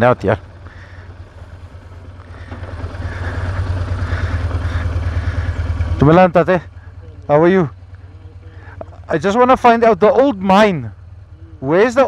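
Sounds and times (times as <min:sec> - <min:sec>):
motorcycle engine low throb: 0:00.0 - 0:12.0.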